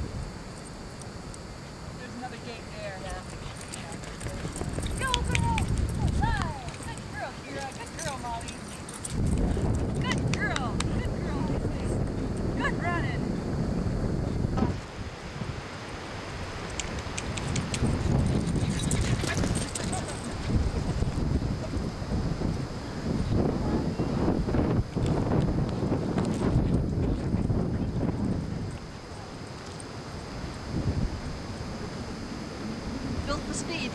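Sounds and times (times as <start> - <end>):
wind buffeting microphone: 2.0 - 15.7, 16.3 - 33.9
handling noise clicks: 4.0 - 7.1.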